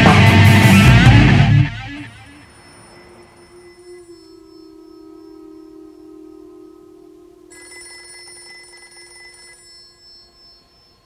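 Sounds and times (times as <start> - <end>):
low electronic drone: 0.0 - 7.9
high trembling electronic ring: 1.9 - 11.0.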